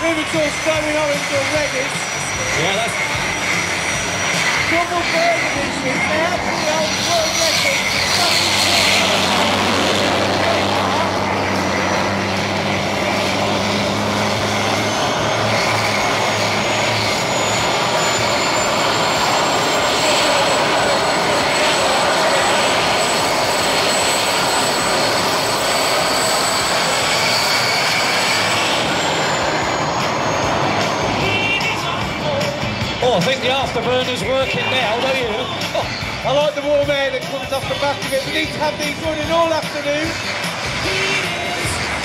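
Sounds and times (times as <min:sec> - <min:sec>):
jet engine roaring: 0:00.0 - 0:42.0
high turbine whistle: 0:00.1 - 0:32.8.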